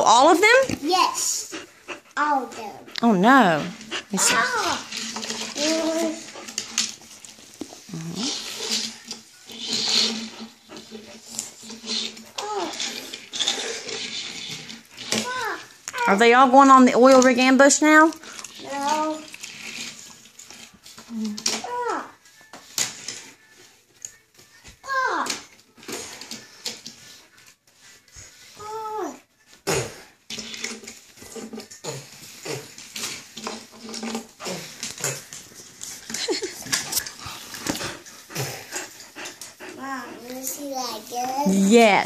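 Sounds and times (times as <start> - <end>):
toy cars clicking on a table: 8.3 - 16.0.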